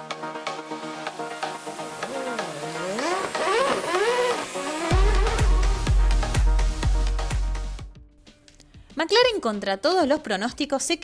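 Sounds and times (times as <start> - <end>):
electronic intro music: 0.2 - 7.9
racing car engine revving effect: 2.0 - 6.2
heavy bass beat: 2.0 - 8.0.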